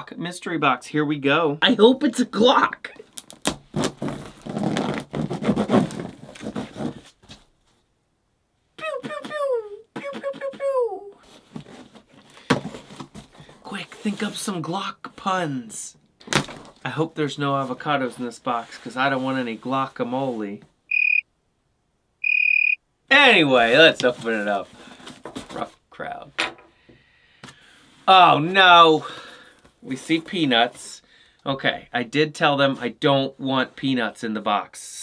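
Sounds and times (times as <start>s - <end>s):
packing tape scraping and ripping: 3.1s - 7.2s
cardboard rustling: 3.6s - 7.5s, 11.3s - 14.2s, 23.8s - 25.8s
cricket chirps: 20.9s - 21.2s, 22.2s - 22.8s.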